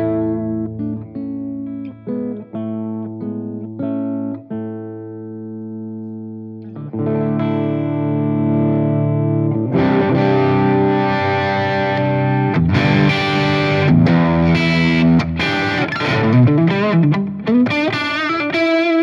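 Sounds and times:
overdriven electric guitar chords: 0:00.0 - 0:19.0.

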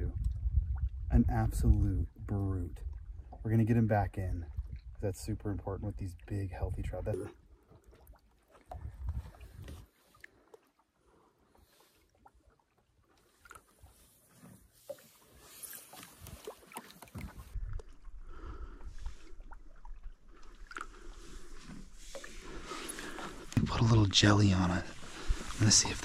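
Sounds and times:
water movement: 0:00.0 - 0:26.0.

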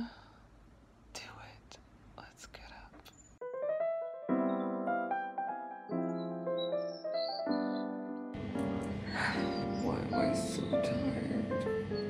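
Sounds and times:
breathing: 0:00.0 - 0:00.5
close whispering: 0:01.1 - 0:03.1
electric piano music: 0:03.4 - 0:12.0.

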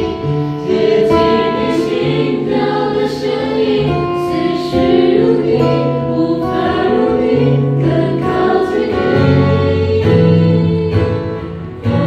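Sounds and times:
choir singing a worship song: 0:00.0 - 0:12.0
instrumental accompaniment: 0:00.0 - 0:12.0.

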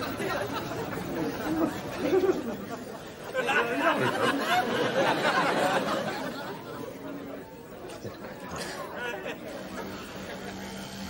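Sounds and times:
chatter of many overlapping voices: 0:00.0 - 0:11.0.

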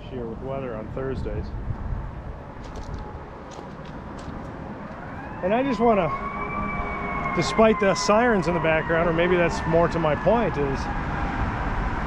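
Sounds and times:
road traffic rumble: 0:00.0 - 0:12.0
wind buffeting microphone: 0:00.0 - 0:12.0.

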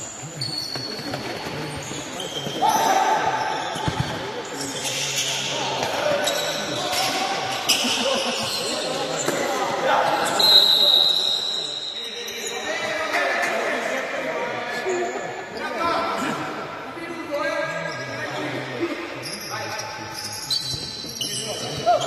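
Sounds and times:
players shouting: 0:02.6 - 0:03.7.

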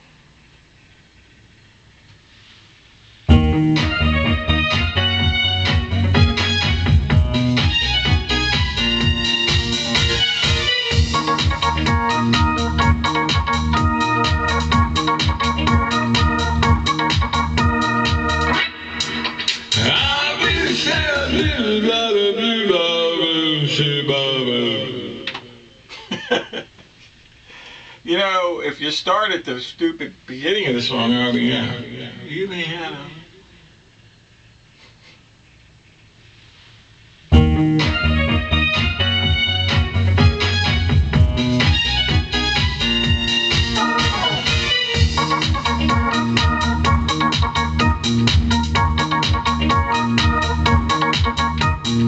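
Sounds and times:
drum machine beat: 0:03.3 - 0:21.9, 0:37.3 - 0:52.0
electronic keyboard music: 0:03.3 - 0:22.0, 0:37.3 - 0:52.0.

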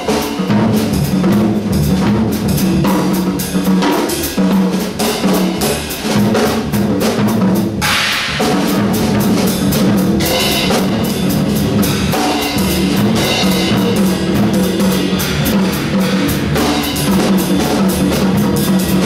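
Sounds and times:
drum kit playing: 0:00.0 - 0:19.0
cymbals struck: 0:07.8 - 0:18.1.

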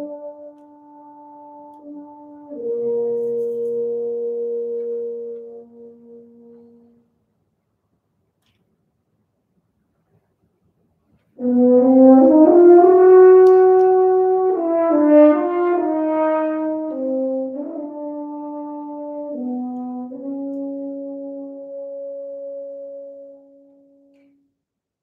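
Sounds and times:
solo french horn: 0:00.0 - 0:07.2, 0:11.4 - 0:24.4.

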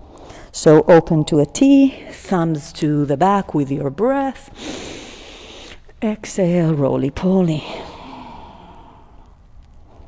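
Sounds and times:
breathy exhale: 0:07.6 - 0:09.4.

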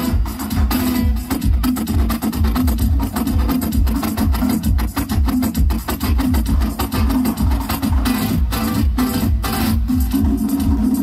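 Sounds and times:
steady low beat: 0:00.0 - 0:11.0.

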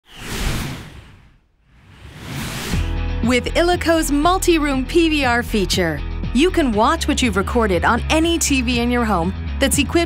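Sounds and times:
whoosh swish: 0:00.0 - 0:03.0.

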